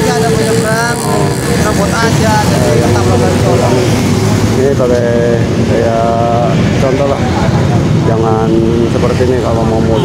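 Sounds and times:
indistinct voices talking: 0:00.0 - 0:10.0
motorcycles passing: 0:00.0 - 0:10.0.

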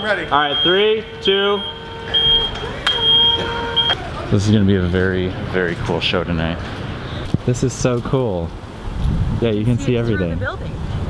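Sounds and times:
drone propellers whining: 0:00.0 - 0:07.4.

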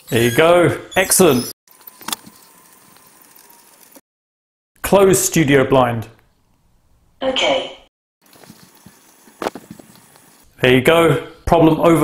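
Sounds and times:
man speaking: 0:00.0 - 0:01.5, 0:10.6 - 0:12.0.

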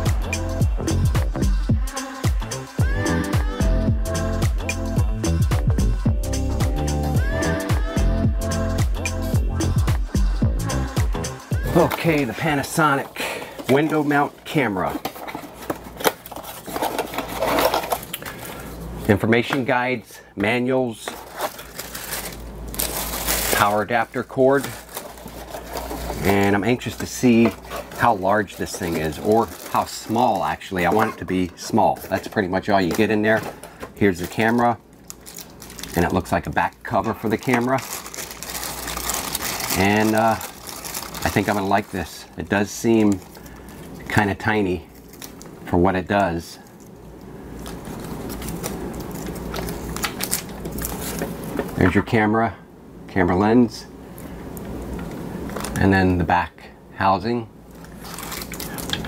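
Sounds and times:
plastic bag crinkling: 0:11.7 - 0:19.1, 0:21.0 - 0:44.2, 0:44.9 - 0:45.5, 0:47.6 - 0:51.8, 0:57.7 - 0:59.0.

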